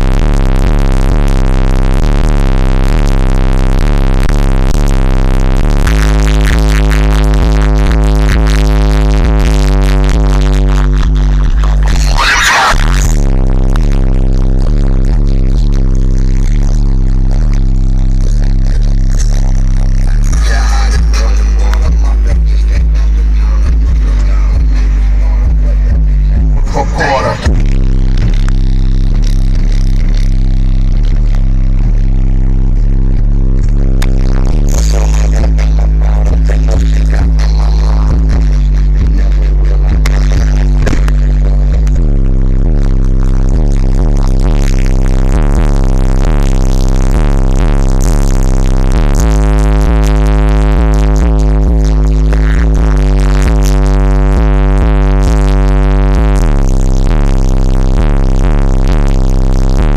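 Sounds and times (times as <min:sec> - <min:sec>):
bass-heavy electronic music: 0:00.0 - 0:59.9.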